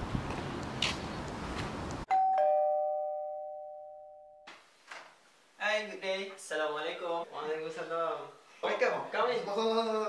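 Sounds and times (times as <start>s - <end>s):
doorbell ding-dong chime: 2.1s - 4.5s.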